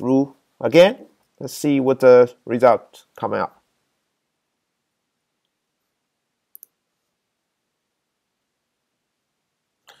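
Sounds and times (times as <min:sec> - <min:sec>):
computer mouse clicks: 0:06.5 - 0:06.8.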